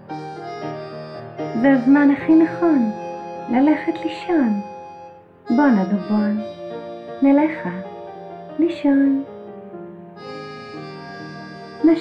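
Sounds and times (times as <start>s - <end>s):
soft reedy lullaby accompaniment: 0.0s - 12.0s.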